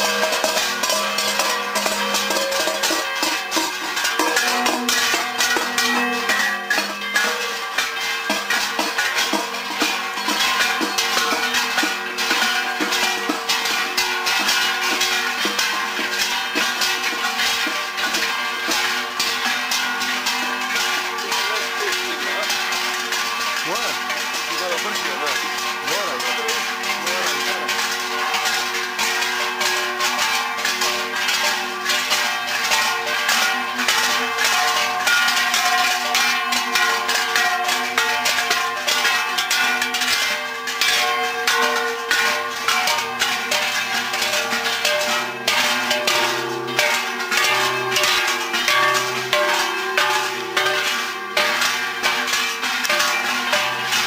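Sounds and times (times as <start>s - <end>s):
metal bells clanking and jangling: 0.0s - 54.0s.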